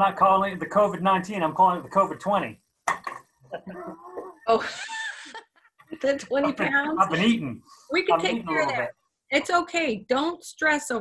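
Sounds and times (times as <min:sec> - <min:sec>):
people laughing: 0:03.6 - 0:05.4, 0:06.0 - 0:07.5, 0:08.1 - 0:08.8.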